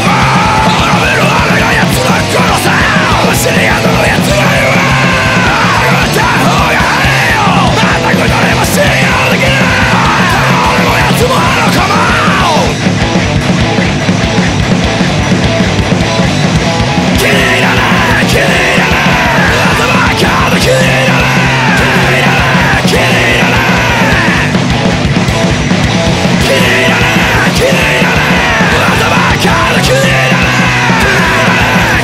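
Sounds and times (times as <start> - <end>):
distorted guitar and bass: 0.0 - 32.0
pounding drums: 0.0 - 32.0
punk metal band playing: 0.0 - 32.0
yelled vocals: 0.0 - 32.0.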